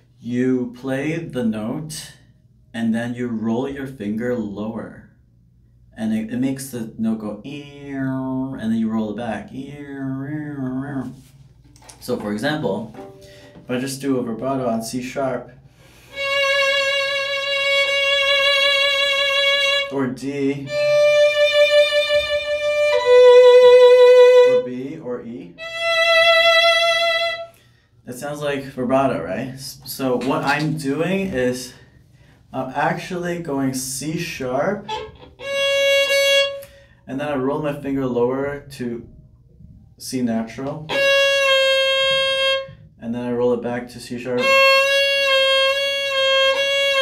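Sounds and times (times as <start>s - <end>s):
violin notes with vibrato: 12.8s - 13.7s, 16.1s - 19.9s, 20.6s - 24.8s, 25.6s - 27.5s, 34.8s - 36.7s, 40.8s - 42.8s, 44.4s - 47.0s.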